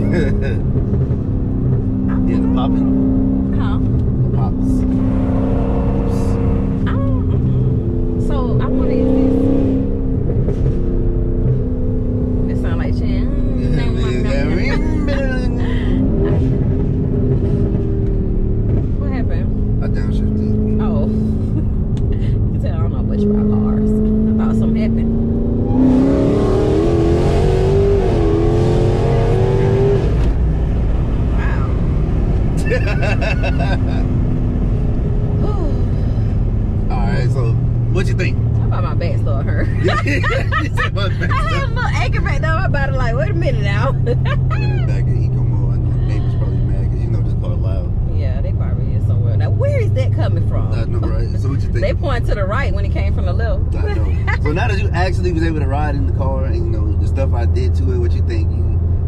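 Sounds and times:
car engine drone from cabin: 0:00.0 - 0:59.0.

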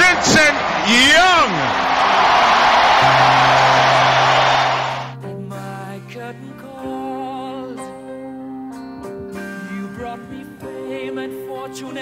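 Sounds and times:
stadium crowd roaring and cheering: 0:00.0 - 0:05.2.

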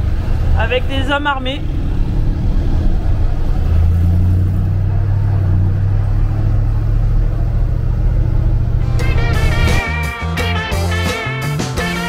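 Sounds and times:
truck diesel engine drone: 0:00.0 - 0:12.0.

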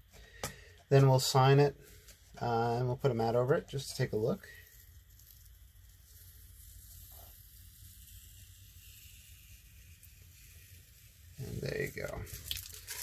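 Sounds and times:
tape peeling off paper: 0:03.9 - 0:13.0.

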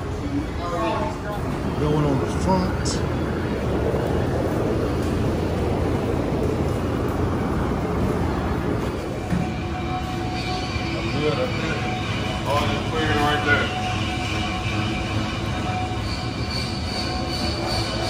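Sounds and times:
machinery hum and whine: 0:00.0 - 0:18.0.

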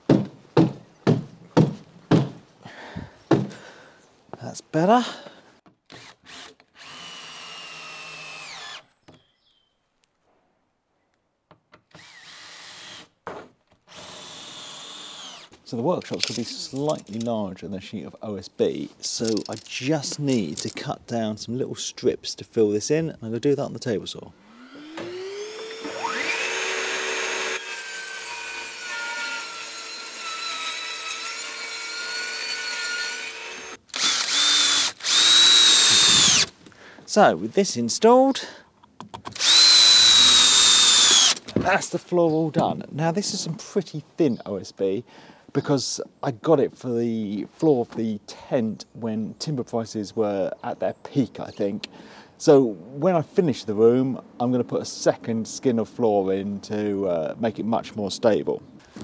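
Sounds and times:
cordless drill driving screws: 0:05.9 - 0:08.9, 0:11.9 - 0:13.2, 0:13.9 - 0:15.6, 0:24.5 - 0:36.5, 0:39.3 - 0:41.5
table saw running: 0:24.5 - 0:36.5
table saw ripping wood: 0:24.5 - 0:36.6, 0:39.4 - 0:41.8.

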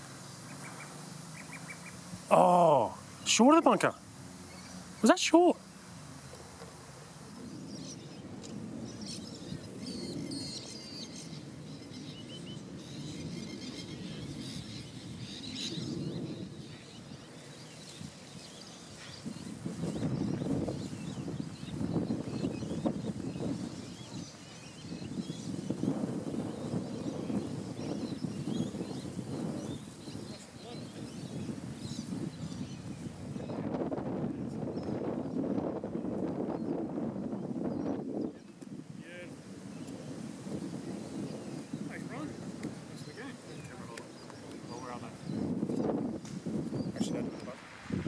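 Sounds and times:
birds chirping and calling: 0:00.0 - 0:05.6, 0:07.0 - 0:25.9, 0:26.5 - 0:33.7, 0:40.5 - 0:47.6.

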